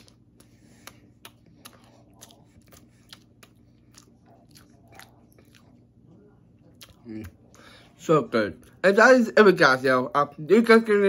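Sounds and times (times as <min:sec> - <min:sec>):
person chewing food: 0:00.0 - 0:06.0, 0:06.6 - 0:08.0.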